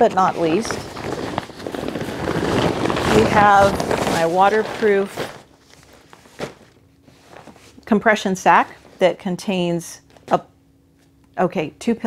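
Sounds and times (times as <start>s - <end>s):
nylon sack rustling: 0.0s - 7.8s.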